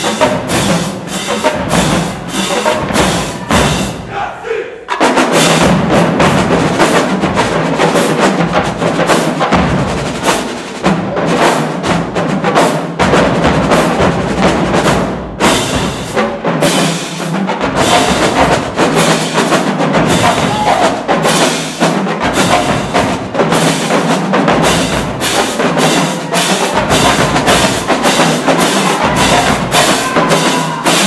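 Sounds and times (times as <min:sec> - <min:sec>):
marching drumline playing: 0:00.0 - 0:31.0.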